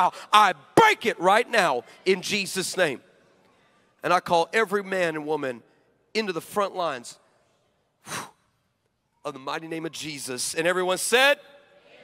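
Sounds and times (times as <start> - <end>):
man speaking: 0.0 - 3.1, 4.0 - 7.3, 9.2 - 11.5
man's sharp breath into microphone: 8.0 - 8.5.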